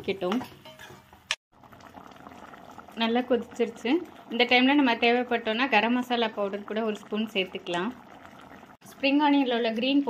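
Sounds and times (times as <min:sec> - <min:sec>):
gravy bubbling in a wok: 0:01.1 - 0:10.0.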